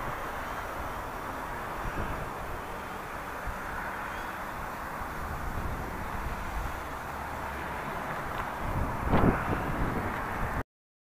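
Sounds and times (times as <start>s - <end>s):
outdoor hiss: 0.0s - 9.5s.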